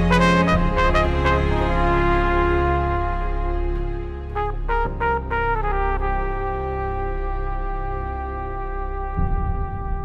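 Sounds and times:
backing track with bass line: 0.0 - 10.0
flugelhorn solo: 0.0 - 10.0.

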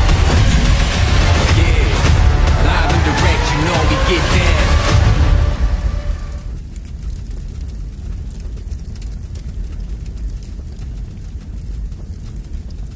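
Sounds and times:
music tail: 0.0 - 6.6
deep rumbling drone: 0.0 - 6.9
faint fire crackles: 4.8 - 12.9.

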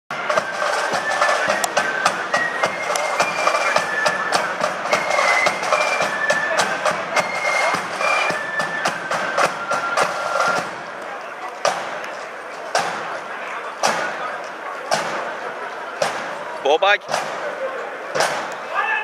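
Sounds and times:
snare drums: 0.1 - 11.0, 11.6 - 18.9
marching flute band: 0.1 - 19.0.

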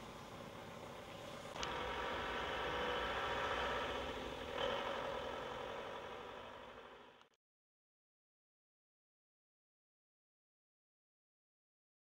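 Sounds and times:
engine running: 0.0 - 7.4.

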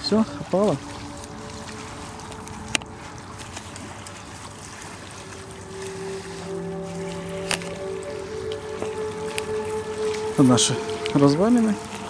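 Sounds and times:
small waves on stony shore: 0.0 - 12.0
soft music of held notes: 0.0 - 12.0.

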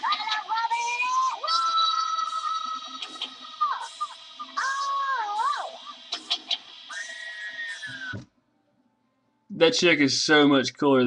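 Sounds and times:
music through small speaker: 0.0 - 6.8.

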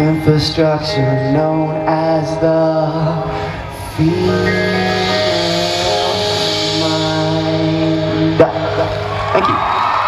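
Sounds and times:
rock band sustained chord: 3.0 - 9.4
crowd cheering: 8.6 - 10.0.

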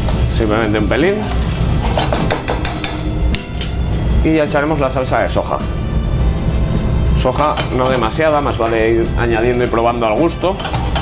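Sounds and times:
light sizzle: 0.0 - 11.0
spoon tapping a pan: 2.0 - 3.9.

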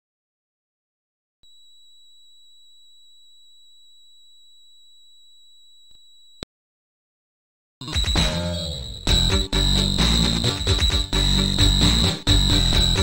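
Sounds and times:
high-pitched electronic beep: 7.8 - 13.0.

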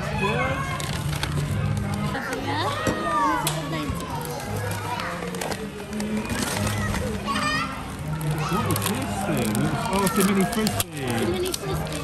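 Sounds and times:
background chatter: 0.0 - 12.0
young children's voices: 6.7 - 9.2.

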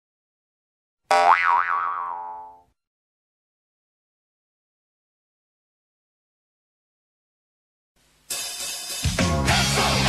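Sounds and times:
cartoon boing sound effect: 1.1 - 2.7.

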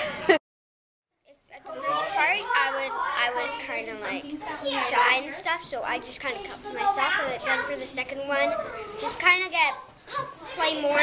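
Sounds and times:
young girl talking: 1.3 - 11.0.

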